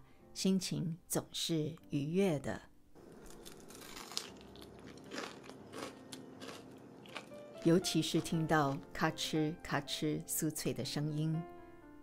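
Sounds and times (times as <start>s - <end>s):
crunching of fried food being chewed: 3.0s - 8.9s.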